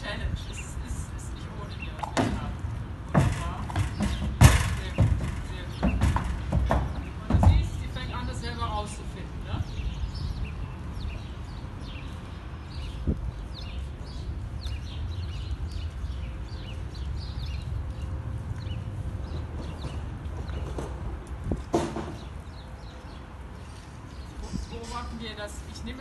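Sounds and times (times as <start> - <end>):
small birds chirping: 0.0 - 26.0
hoof knocking on trailer floor: 3.1 - 8.0, 21.6 - 22.3.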